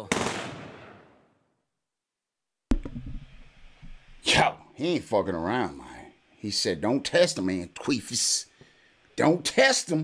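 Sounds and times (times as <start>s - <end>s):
gunshot sound effect: 0.0s - 1.1s.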